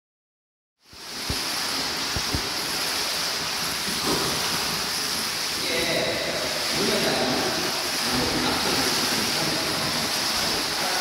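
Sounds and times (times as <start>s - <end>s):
water washing: 0.8s - 11.0s.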